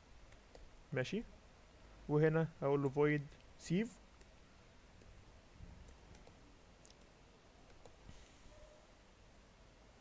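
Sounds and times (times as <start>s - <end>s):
computer keyboard keystrokes: 5.8s - 8.0s.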